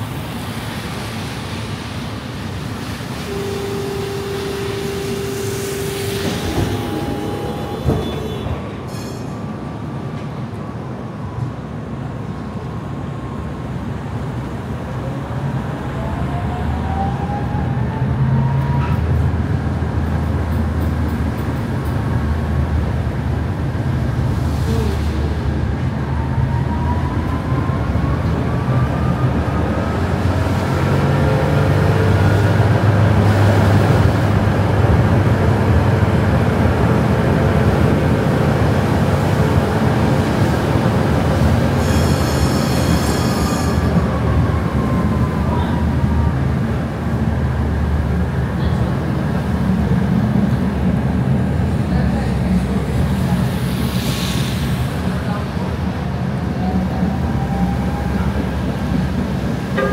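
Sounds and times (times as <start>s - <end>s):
tram rolling rail noise: 0.0s - 59.9s
high squeal: 41.8s - 44.0s.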